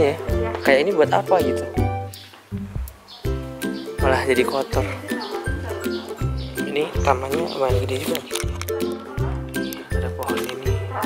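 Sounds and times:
music with bass beat and melody: 0.0s - 11.0s.

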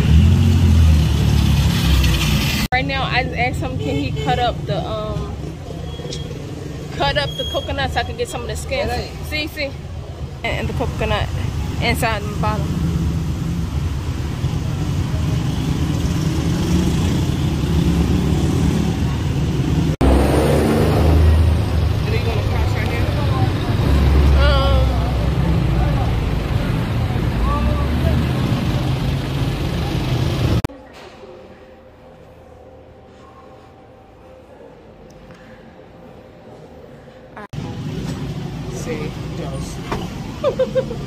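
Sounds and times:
motorcycle engines: 0.0s - 30.7s, 37.5s - 41.0s
people's voices: 21.0s - 32.2s
minibus engine running: 21.1s - 30.7s.

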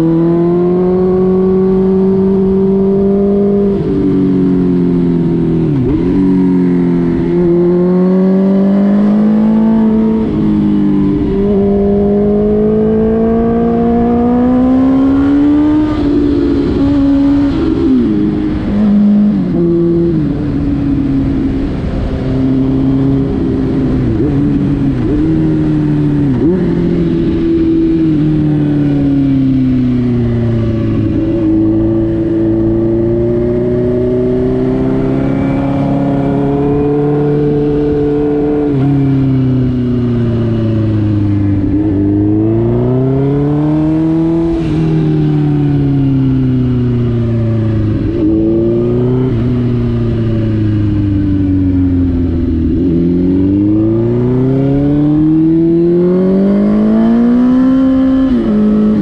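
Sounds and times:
motorcycle engine revving: 0.0s - 59.0s
wind and road noise: 0.0s - 59.0s.

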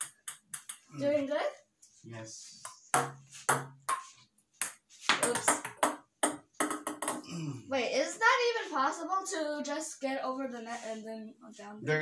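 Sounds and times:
paddles striking ping pong ball: 0.0s - 0.9s, 2.6s - 7.2s
ping pong ball bouncing on table: 0.0s - 0.9s, 2.6s - 7.2s.

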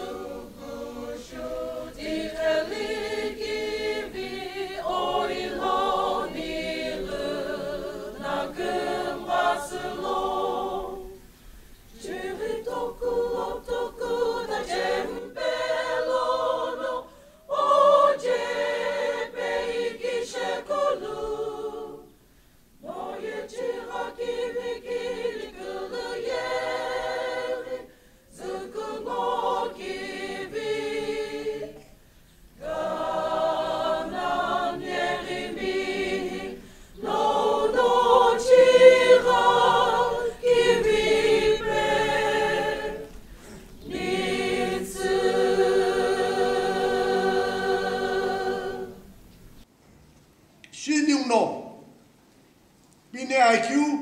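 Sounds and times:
choir singing: 0.0s - 22.2s, 22.8s - 49.3s.

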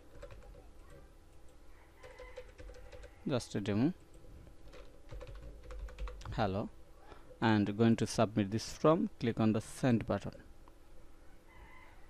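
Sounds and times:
faint keyboard keystrokes: 4.1s - 6.4s.

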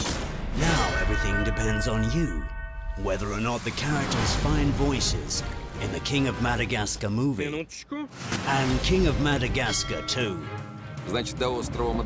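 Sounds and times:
background music chord: 8.9s - 12.0s.

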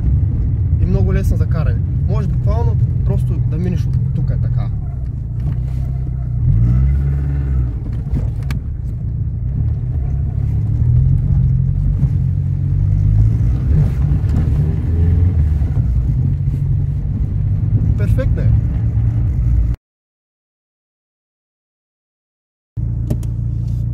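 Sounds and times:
car engine revving: 0.0s - 19.8s.

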